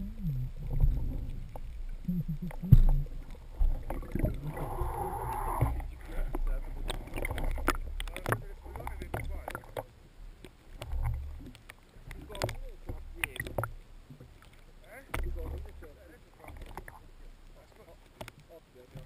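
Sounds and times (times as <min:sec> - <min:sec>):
low water surges: 0:00.0 - 0:19.0
sea water sloshing and bubbling: 0:00.0 - 0:19.0.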